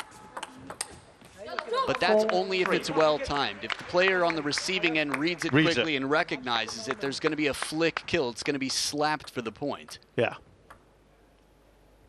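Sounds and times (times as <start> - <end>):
table tennis ball clicking: 0.4 - 1.0, 10.7 - 10.9.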